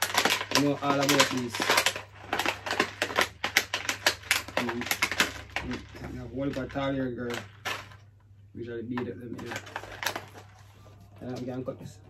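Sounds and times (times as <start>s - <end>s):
plastic packet crinkling: 0.0s - 8.2s, 8.9s - 11.6s.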